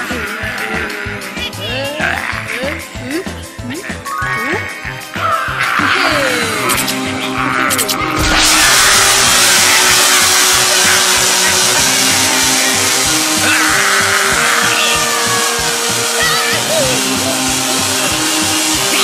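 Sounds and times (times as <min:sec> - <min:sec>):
cartoon background music: 0:00.0 - 0:19.0
rushing whoosh sound effect: 0:07.4 - 0:16.2
high wavering cries: 0:12.6 - 0:19.0.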